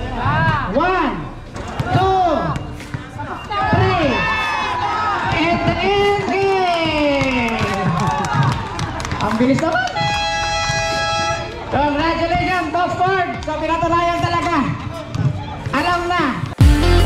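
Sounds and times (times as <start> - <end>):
spectators shouting: 3.4 - 11.7.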